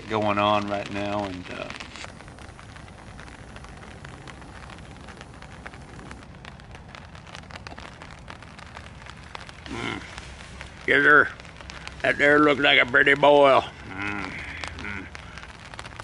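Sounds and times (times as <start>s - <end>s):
rain pattering: 0.0s - 16.0s.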